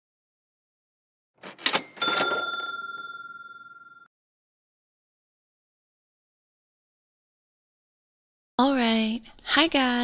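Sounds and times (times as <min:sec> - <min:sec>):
bright bell ding: 0:01.8 - 0:04.1.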